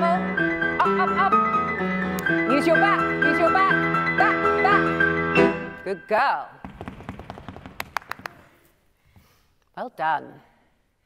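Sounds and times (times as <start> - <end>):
rapid sharp taps: 6.6 - 8.4.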